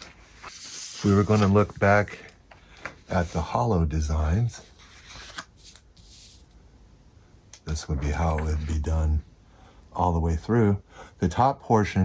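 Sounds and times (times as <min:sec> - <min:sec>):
paper rustling and sliding: 0:00.0 - 0:03.7, 0:04.4 - 0:06.6.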